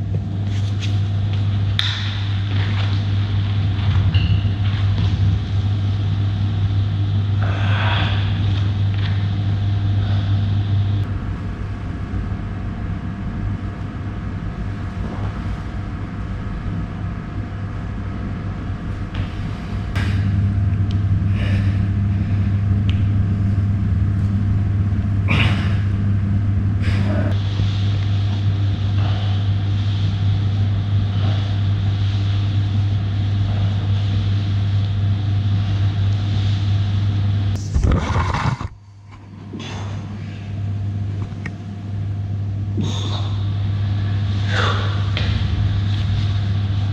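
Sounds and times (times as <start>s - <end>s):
low mechanical hum: 0.0s - 46.9s.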